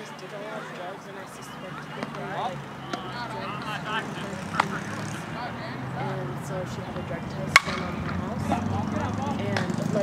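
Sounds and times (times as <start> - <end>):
distant traffic hum: 0.0 - 10.0.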